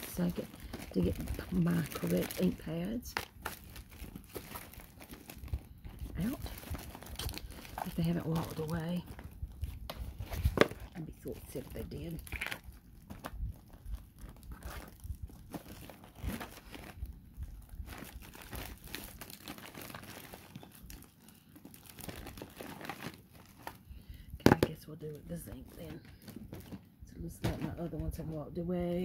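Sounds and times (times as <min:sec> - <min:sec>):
rustling and crinkling: 0:00.0 - 0:29.0.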